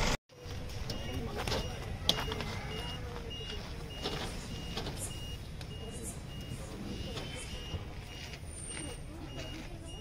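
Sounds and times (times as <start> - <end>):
bus engine idling: 0.0 - 10.0
high electronic warning beeps: 0.4 - 10.0.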